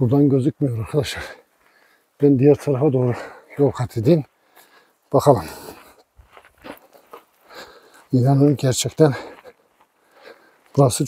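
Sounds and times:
footsteps on stony dirt: 0.8 - 11.0.

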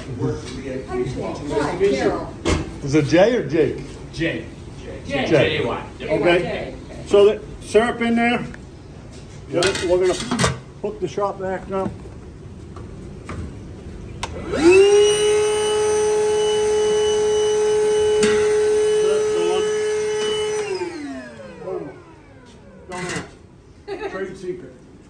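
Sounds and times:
shop vacuum motor whining: 14.2 - 23.4.

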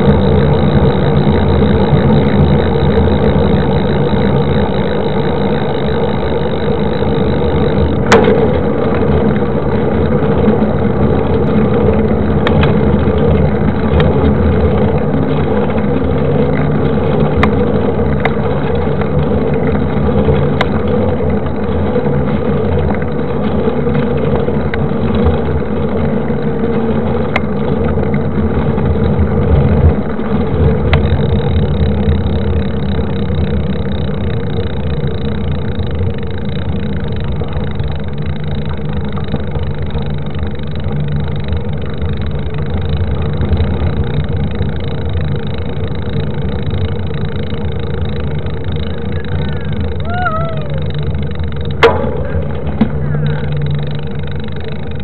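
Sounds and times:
bike tyre rolling on asphalt: 0.0 - 55.0.

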